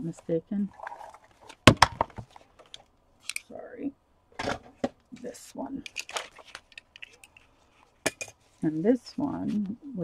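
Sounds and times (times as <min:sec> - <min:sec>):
plastic clicks and knocks: 0:01.5 - 0:03.4.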